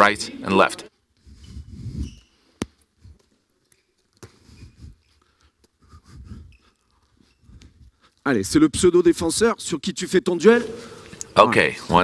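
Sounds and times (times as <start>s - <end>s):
shoes squeaking on floor: 1.2s - 5.2s, 6.4s - 7.6s.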